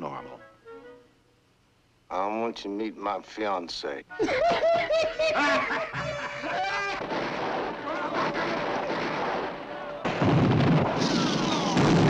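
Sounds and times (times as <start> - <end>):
rapid gunfire crackle: 6.6 - 12.0
deep volley of blasts: 7.0 - 12.0.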